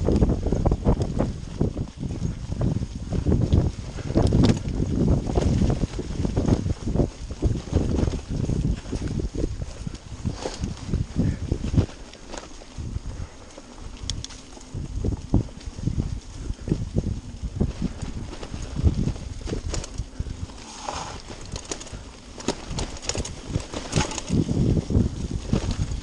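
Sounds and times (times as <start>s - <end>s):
bike rattling and knocking: 0.0s - 26.0s
tyre noise: 0.0s - 26.0s
wind on microphone: 0.0s - 26.0s.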